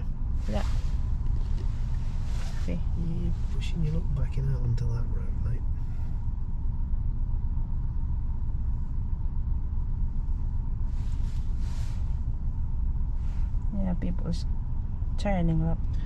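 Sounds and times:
car engine rumble from inside: 0.0s - 16.0s
faint steady whine: 0.0s - 16.0s.

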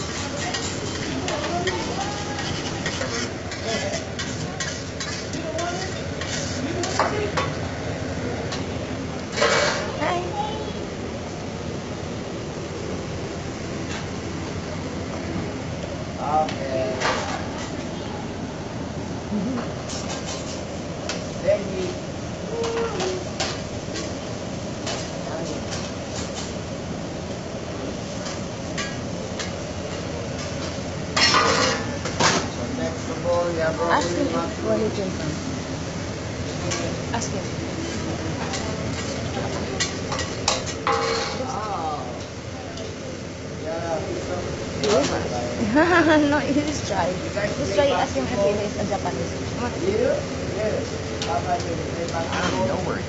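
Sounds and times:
metal spatula scraping griddle: 0.0s - 7.1s
restaurant background noise: 0.0s - 53.0s
rice sizzling: 0.0s - 53.0s.

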